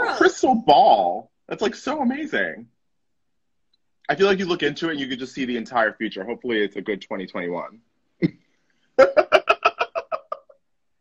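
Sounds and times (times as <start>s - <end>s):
person cackling laughter: 9.0s - 10.6s.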